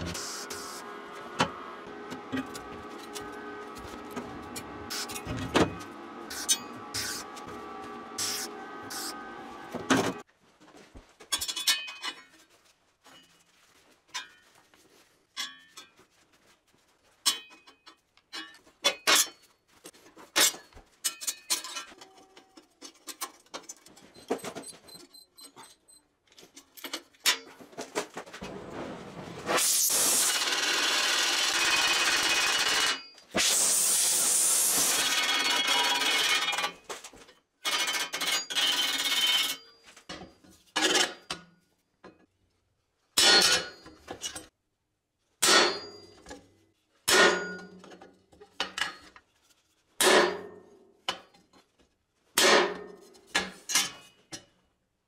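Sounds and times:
hammer striking steel punch: 47.1s - 47.7s.

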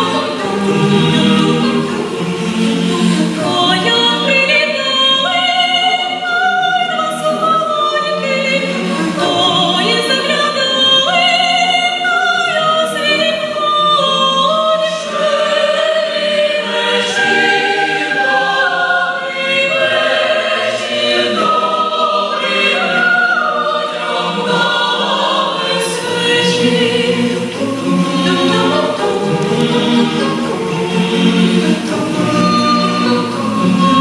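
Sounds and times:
choir singing a cappella: 0.0s - 34.0s.

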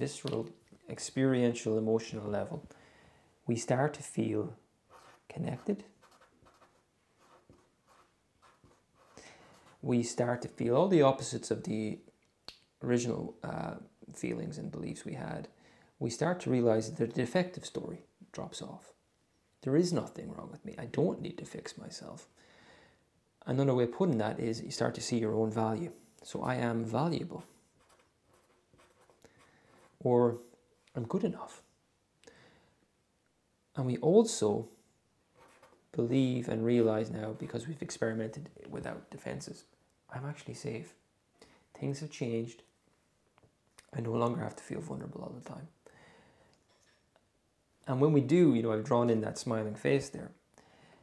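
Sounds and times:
felt-tip marker scratching: 6.0s - 9.8s, 27.8s - 30.0s, 35.4s - 35.8s.

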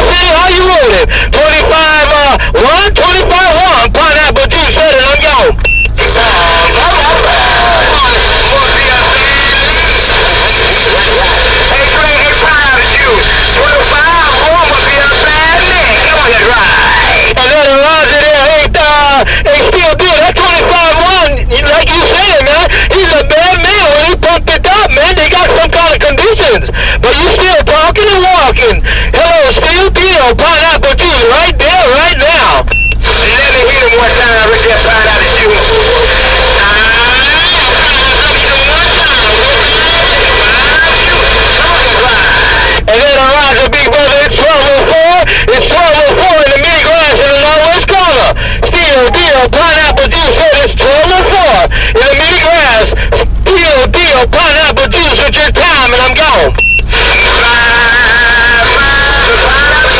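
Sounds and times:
distorted voices over radio: 0.0s - 59.9s
radio static hiss: 0.0s - 59.9s.

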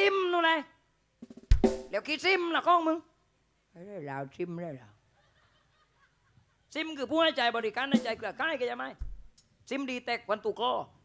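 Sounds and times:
man speaking in puppet voice: 6.8s - 9.0s, 9.7s - 11.0s.

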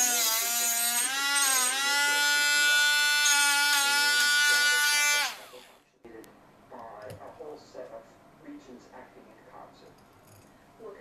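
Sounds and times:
rotary tool cutting metal: 0.0s - 5.7s.

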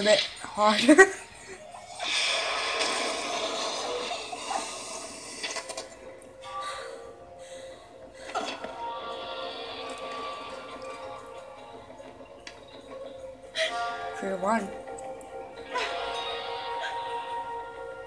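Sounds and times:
animated video soundtrack music: 0.0s - 18.0s.

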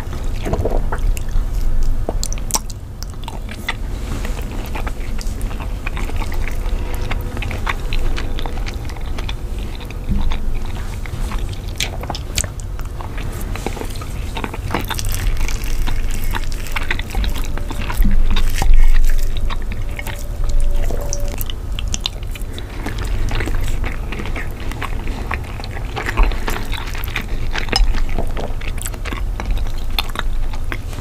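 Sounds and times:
person chewing wetly: 0.0s - 31.0s.

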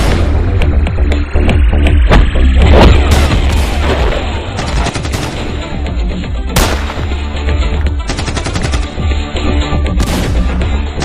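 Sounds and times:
music with heavy bass: 0.0s - 11.0s
pistol gunshots: 6.6s - 7.2s.

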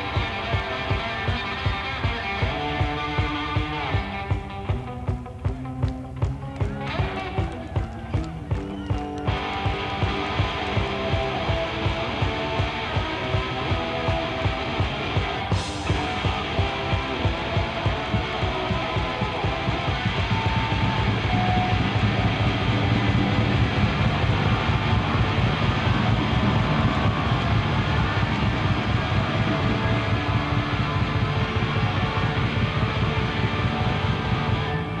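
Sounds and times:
electric guitar: 0.0s - 35.0s
live rock band playing: 0.0s - 35.0s.

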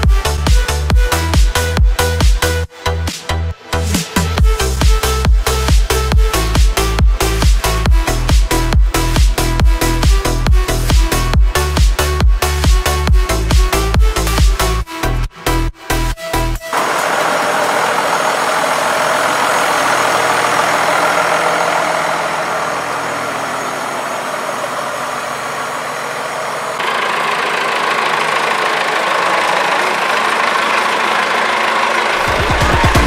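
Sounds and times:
tractor diesel engine idling: 4.4s - 14.8s, 16.7s - 33.0s.

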